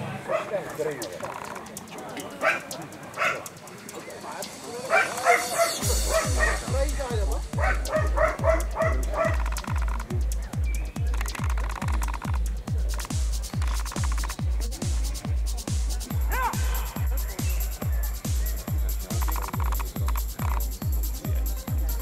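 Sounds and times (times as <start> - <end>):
electronic dance music: 0.1 - 22.0.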